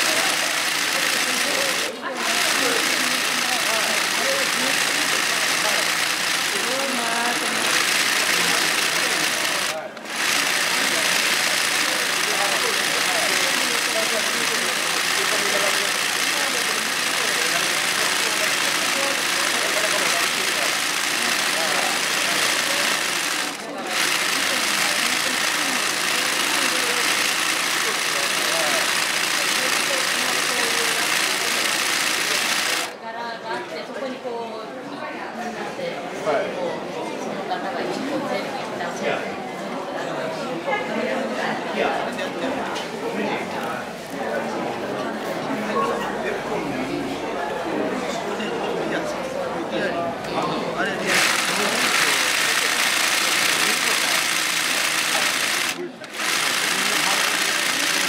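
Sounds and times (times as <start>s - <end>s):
embroidery sewing machine stitching: 0.0s - 33.0s, 51.0s - 58.0s.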